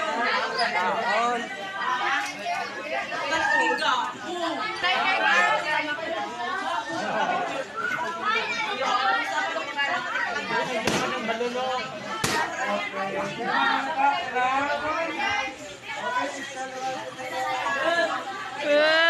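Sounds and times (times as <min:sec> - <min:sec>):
students talking at once: 0:00.0 - 0:19.0.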